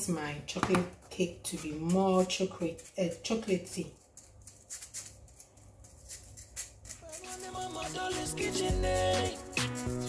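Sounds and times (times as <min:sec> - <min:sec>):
spoon rustling powder through sieve: 0:01.1 - 0:10.0
background music: 0:07.0 - 0:10.0.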